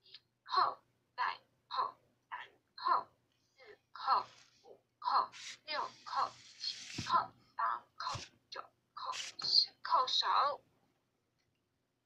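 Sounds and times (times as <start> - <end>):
person speaking broken syllables: 5.0 - 10.6.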